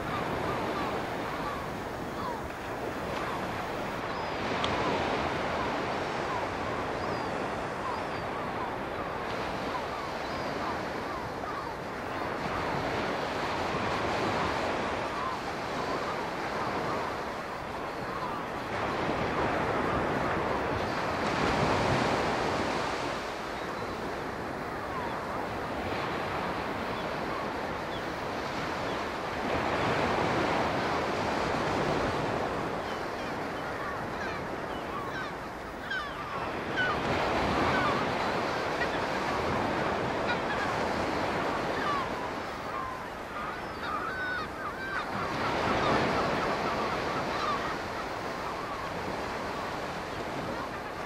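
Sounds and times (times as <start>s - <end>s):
sea water rushing and washing: 0.0s - 51.0s.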